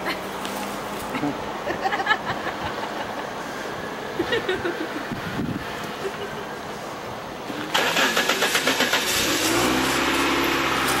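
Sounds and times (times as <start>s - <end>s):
car engine starter cranking: 7.5s - 11.0s.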